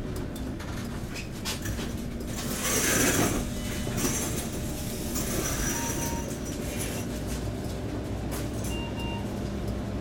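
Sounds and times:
bus engine running: 0.0 - 10.0.

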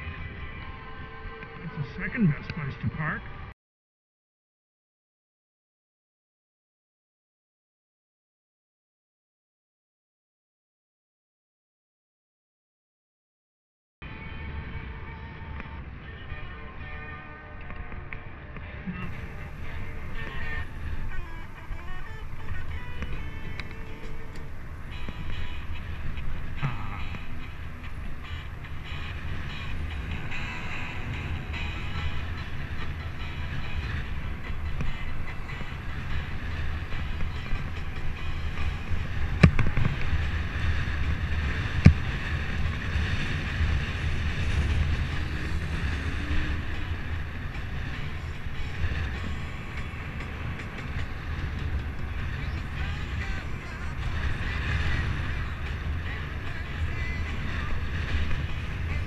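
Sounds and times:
bicycle road noise: 0.0 - 3.5, 14.0 - 59.0
wind on microphone: 14.1 - 59.0.

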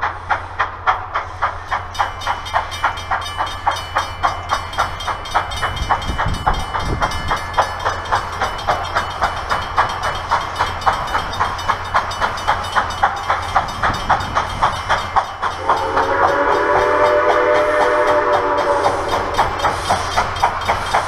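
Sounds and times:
railroad crossing bell ringing: 1.2 - 21.0
chime steam whistle blast: 15.5 - 20.8.

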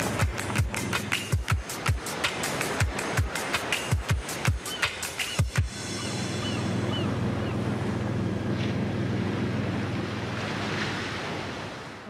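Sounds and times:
ocean surf: 0.0 - 12.0
wind: 0.0 - 12.0.

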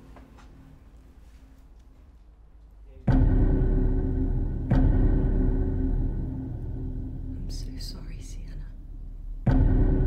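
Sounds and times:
low steady drone: 0.6 - 10.0.

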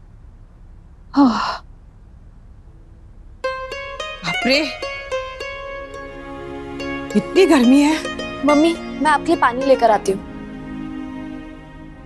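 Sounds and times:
woman sighing: 1.2 - 1.7.

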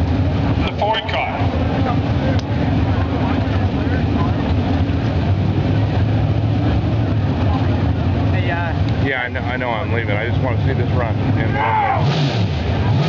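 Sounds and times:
drag car engines droning: 0.0 - 13.0.

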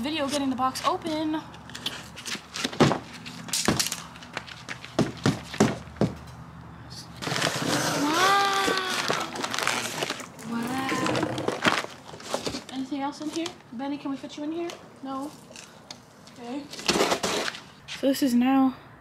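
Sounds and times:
cardboard box being torn open: 7.2 - 12.7.

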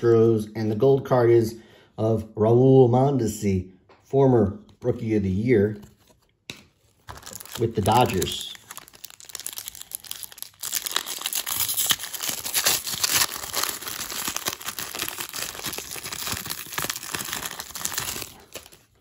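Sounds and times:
foil wrapper tearing and crinkling: 6.8 - 19.0.

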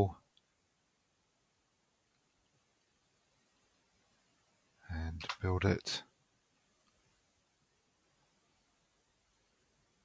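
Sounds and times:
faint click: 2.1 - 2.9, 6.8 - 7.0
spoken word: 4.9 - 6.0.

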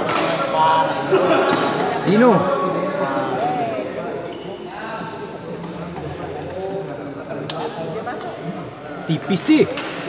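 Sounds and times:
people talking in echoing hall: 0.0 - 10.0.

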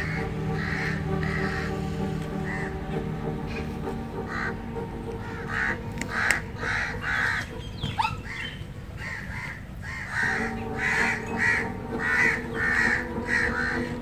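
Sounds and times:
crows cawing: 0.0 - 14.0
steady low hum: 0.0 - 14.0.

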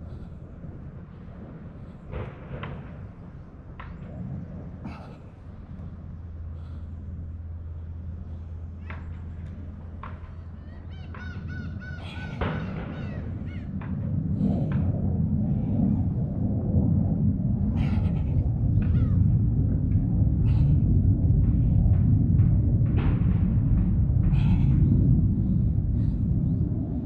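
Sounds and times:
low rumble: 0.0 - 27.0
birds calling harshly: 10.2 - 13.7.

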